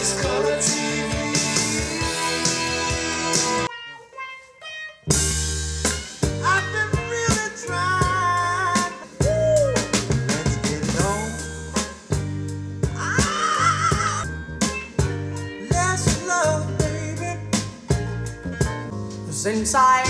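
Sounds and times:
music with drums and bass: 0.0s - 3.7s, 5.1s - 20.0s.

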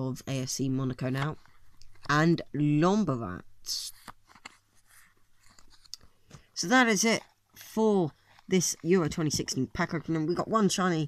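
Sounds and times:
paper stickers rustling: 3.8s - 10.1s.

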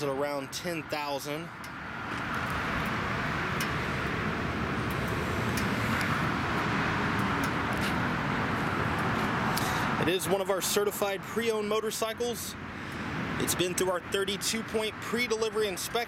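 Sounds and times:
motor vehicle rumble with hiss: 1.2s - 15.9s.

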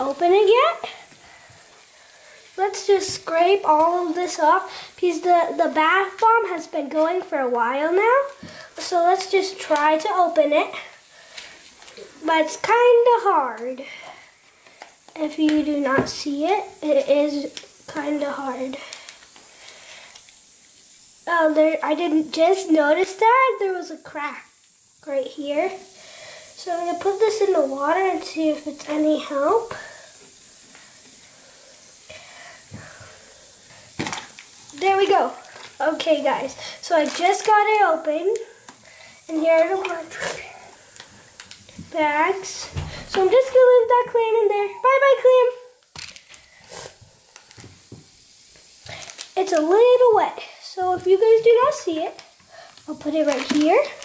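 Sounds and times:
bath bomb fizzing in water: 0.0s - 54.0s
wet foil crinkling: 17.2s - 22.0s, 33.2s - 42.4s, 45.8s - 54.0s.

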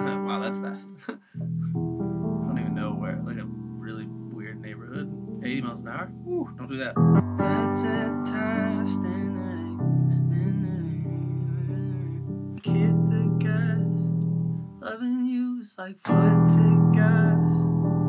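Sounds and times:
keyboard piano chords: 0.0s - 14.8s, 16.1s - 18.0s
wordless singing: 7.4s - 14.1s, 14.8s - 17.6s.

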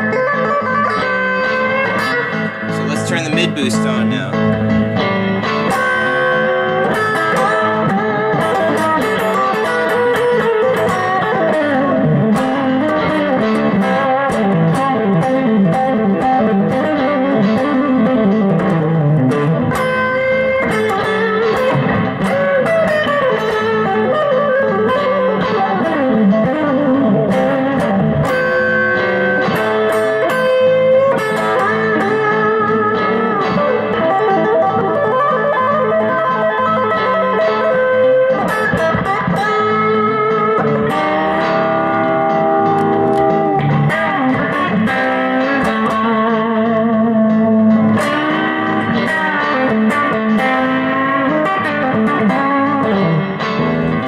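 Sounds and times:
electric guitar lead with string bends: 0.0s - 54.0s.

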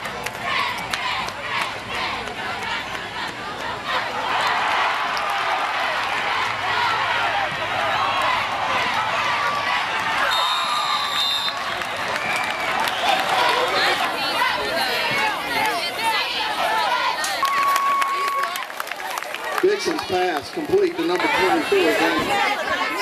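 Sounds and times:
crowd shouting and cheering: 0.0s - 23.0s.

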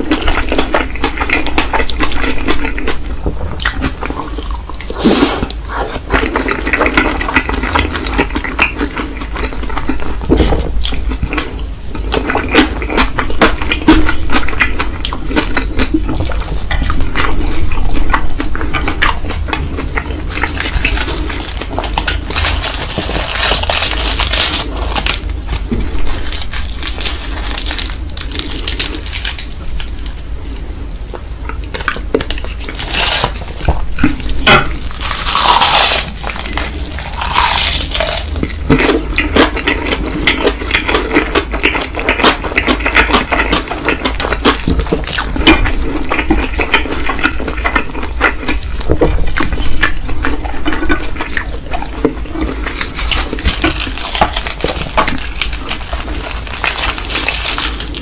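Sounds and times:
wet chewing and mouth sounds: 0.0s - 58.0s.

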